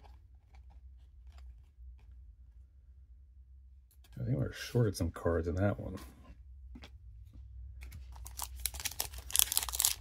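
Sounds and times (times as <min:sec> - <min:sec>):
foil wrapper tearing and crinkling: 0:08.2 - 0:10.0.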